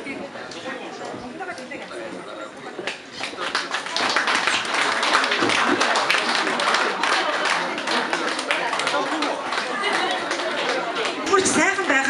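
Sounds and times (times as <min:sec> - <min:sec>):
people clapping: 0:02.8 - 0:12.0.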